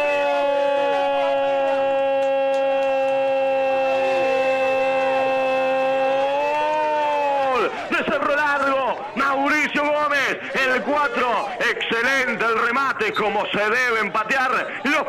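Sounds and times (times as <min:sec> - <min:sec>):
commentator's long goal shout: 0:00.0 - 0:12.8
person talking quickly: 0:07.6 - 0:15.0.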